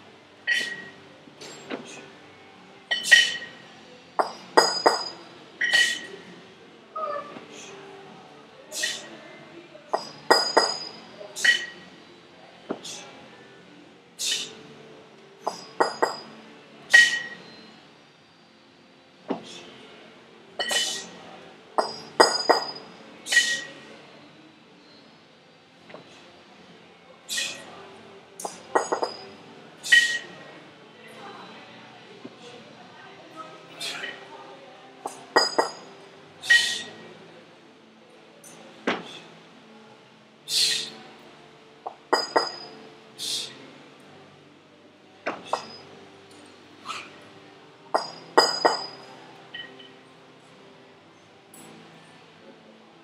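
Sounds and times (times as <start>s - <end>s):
kettlebell metallic clinks: 0.5s - 1.6s, 2.9s - 3.6s, 4.2s - 6.1s, 10.0s - 11.8s, 15.5s - 17.4s, 20.6s - 21.1s, 21.8s - 23.7s, 28.4s - 30.2s, 35.1s - 36.9s, 41.9s - 42.8s, 45.4s - 45.9s, 47.9s - 49.9s
short hissing bursts: 40.5s - 41.0s.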